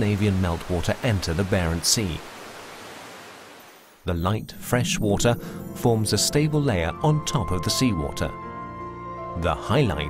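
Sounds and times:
waterfall rushing: 0.0 - 4.0.

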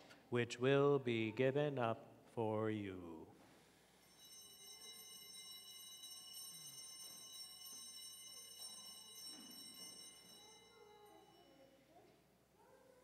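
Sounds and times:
altar bells ringing: 4.0 - 12.0.

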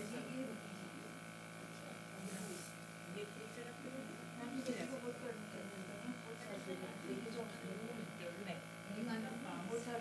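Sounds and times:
small compressor humming: 0.0 - 10.0
airbrush air hiss: 2.1 - 3.6.

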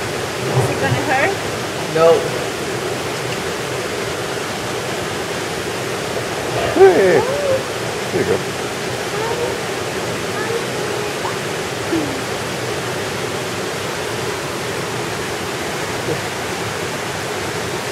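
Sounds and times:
faint voices: 0.0 - 3.7, 6.4 - 12.9
running water rushing: 0.0 - 17.9.

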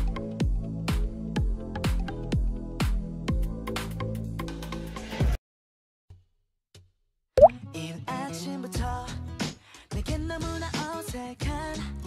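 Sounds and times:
pop song: 7.4 - 12.0.

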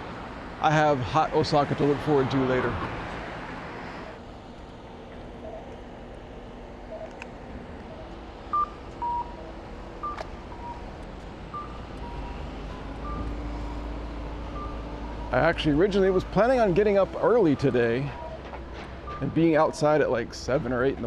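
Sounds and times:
street traffic hum: 0.0 - 21.0
vehicle rumble: 0.0 - 21.0.

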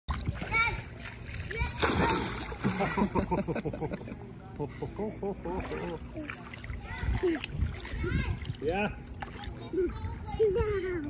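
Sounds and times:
splash into pool water: 0.1 - 3.3.

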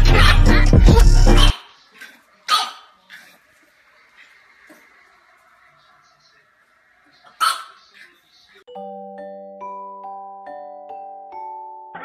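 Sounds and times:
puppy barking: 0.0 - 0.7, 1.3 - 3.4, 7.2 - 8.2.

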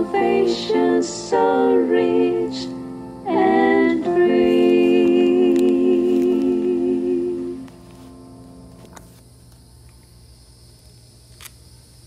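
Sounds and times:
person singing gospel song: 0.0 - 7.8.

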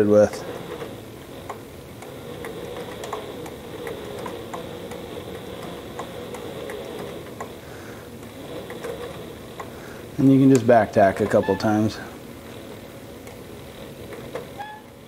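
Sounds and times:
sewing machine motor humming: 0.0 - 15.0
sewing machine stitch ticks: 0.2 - 7.6.

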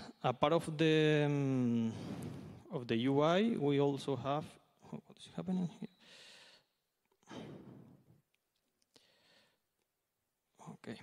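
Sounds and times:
man breathing faintly: 1.8 - 2.7, 8.9 - 9.7.

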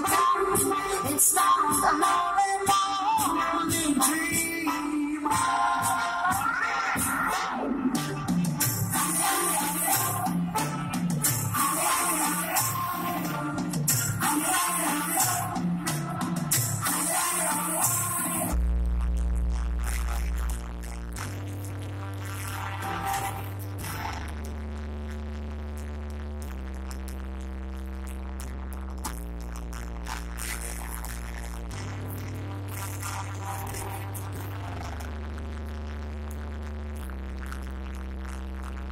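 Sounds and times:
live band music through pa: 0.1 - 18.2
held low bass notes: 7.9 - 38.9.

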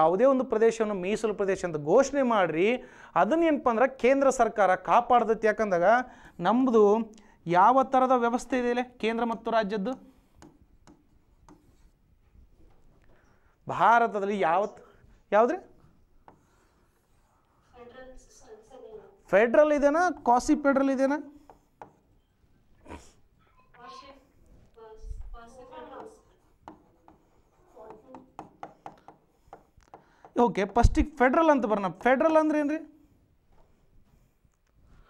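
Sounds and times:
stylus tapping and scratching: 8.3 - 13.2, 15.9 - 17.2, 21.4 - 22.2, 25.7 - 32.7
pen tip taps: 9.9 - 11.7
pen rubbing on display board: 10.1 - 12.0, 16.2 - 17.4, 25.8 - 29.8.

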